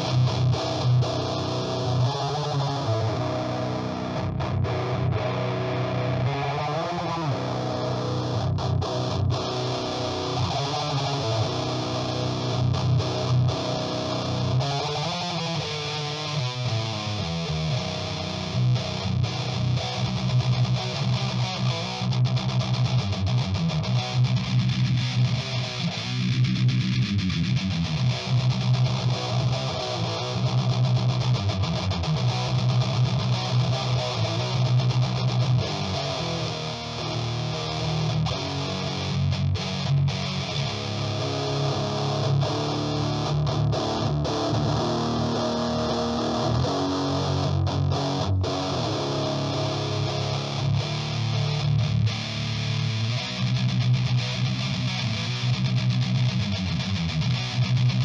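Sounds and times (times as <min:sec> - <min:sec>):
distorted electric guitar riff: 0:00.0 - 0:58.0.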